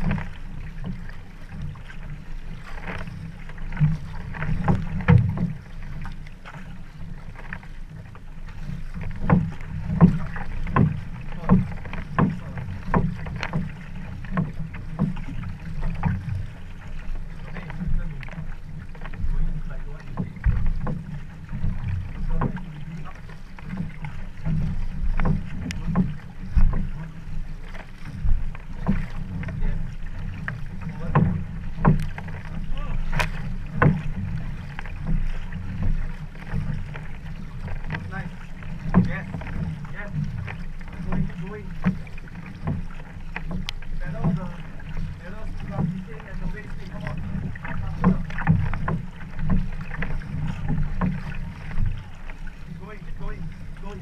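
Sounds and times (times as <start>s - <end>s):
paddle strokes splashing water: 0.0s - 54.0s.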